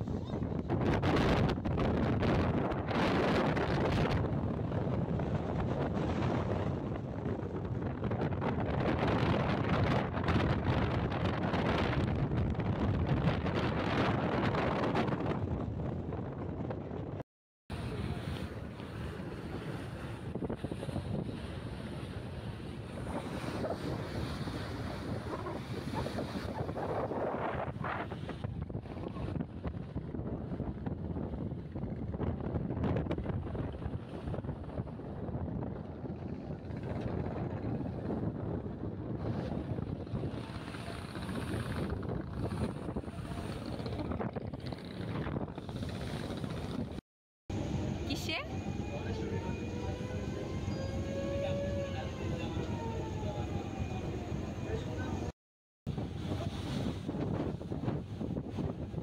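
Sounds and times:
wind buffeting microphone: 0.0 - 55.3, 55.9 - 59.0
water rushing along boat hull: 17.7 - 47.0, 55.9 - 59.0.

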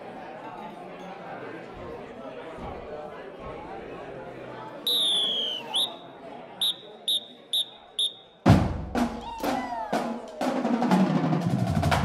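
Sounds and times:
crowd chatter: 0.0 - 12.0
whistle blasts: 4.9 - 8.4
marching band drums: 8.5 - 12.0.

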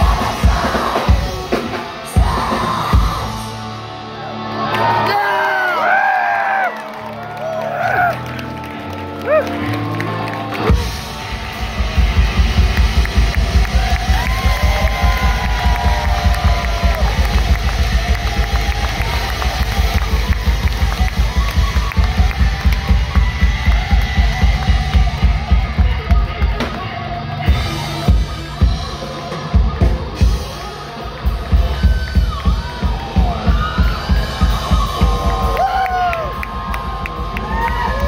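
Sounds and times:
distorted guitars: 0.0 - 5.8, 8.1 - 38.0
crowd whooping and shouting: 0.0 - 38.0
rock band playing: 0.0 - 38.0.

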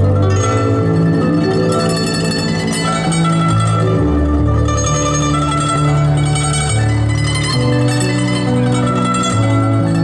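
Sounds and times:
zither plucked melody: 0.0 - 10.0.

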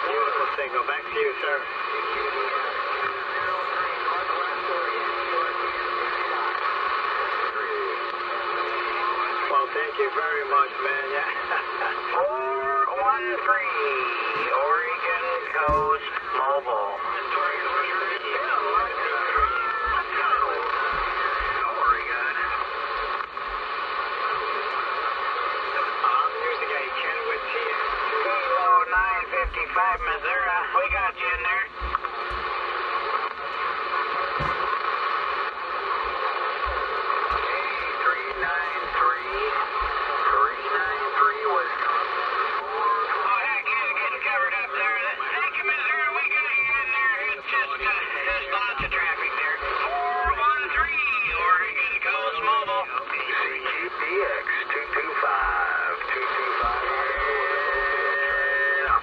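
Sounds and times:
garbled radio voices: 0.0 - 59.0
radio band noise: 0.0 - 59.0.

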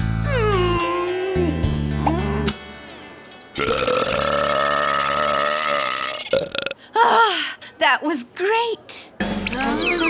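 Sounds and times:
music cue: 0.2 - 4.8
cartoon character burping: 3.6 - 6.8.

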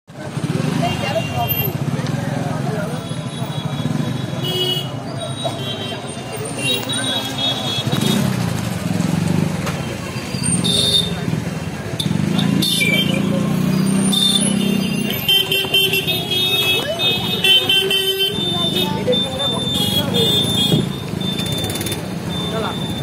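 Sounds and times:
crowd chatter: 0.1 - 23.0
motorbike and car engines: 0.1 - 23.0.

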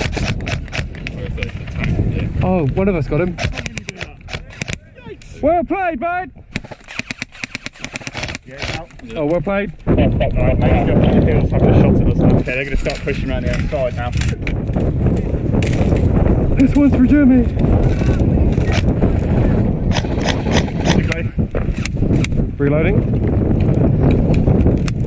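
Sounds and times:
airsoft rifle rapid shots: 0.0 - 0.9, 3.4 - 4.8, 6.6 - 8.8, 19.9 - 21.0
wind rumble on microphone: 0.0 - 25.0.

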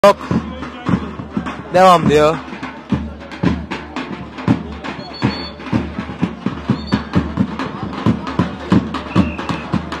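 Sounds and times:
bass drum beating fast: 0.0 - 10.0
voices: 0.0 - 10.0.

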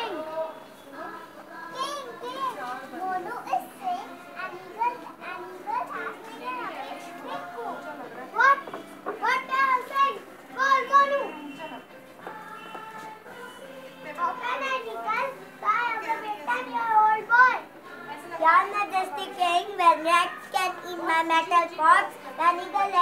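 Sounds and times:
children speaking and calling out: 0.0 - 23.0.

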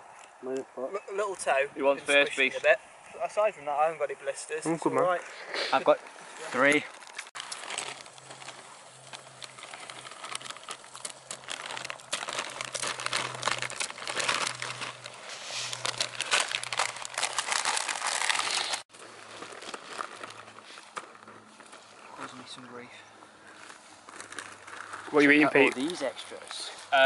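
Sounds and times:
foil wrapper crinkling: 6.6 - 22.5, 23.4 - 26.9.

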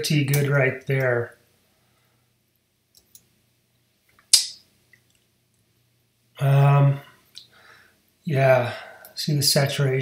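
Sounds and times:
sharp click: 4.3 - 4.6.

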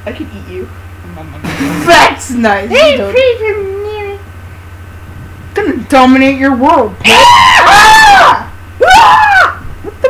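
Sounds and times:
high-pitched voice screaming: 7.0 - 9.6.

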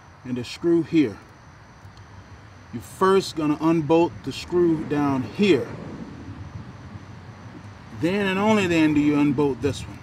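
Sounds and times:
outdoor rumble and hiss: 0.0 - 10.0.

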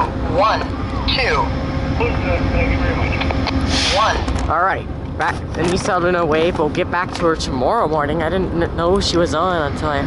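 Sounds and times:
engine idling: 0.0 - 6.6.

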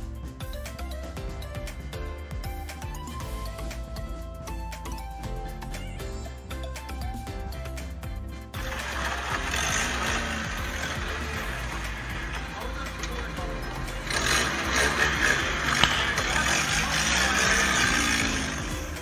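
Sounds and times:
background music: 0.0 - 19.0
bumper scraping on pavement: 8.6 - 19.0
voices: 8.8 - 19.0.

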